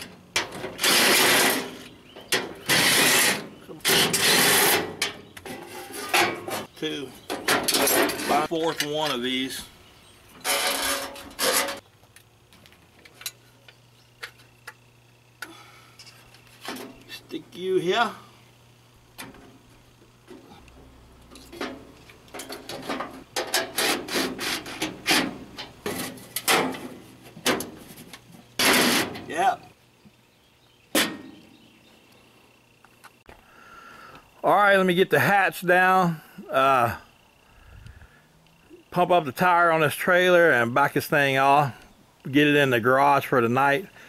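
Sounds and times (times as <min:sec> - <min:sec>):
steel panel scraping: 0:00.0 - 0:06.7, 0:07.3 - 0:09.0, 0:10.4 - 0:11.8, 0:21.4 - 0:29.3.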